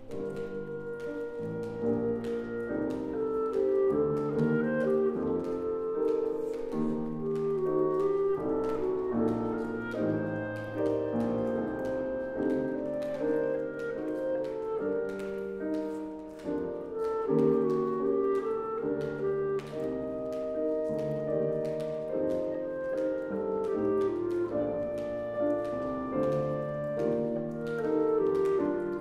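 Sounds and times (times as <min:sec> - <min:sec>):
clarinet melody: 0:00.0 - 0:29.0
grand piano accompaniment: 0:00.0 - 0:29.0.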